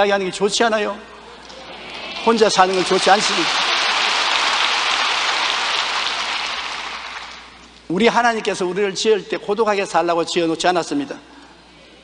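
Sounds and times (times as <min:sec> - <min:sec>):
congregation applauding: 0:01.6 - 0:07.6.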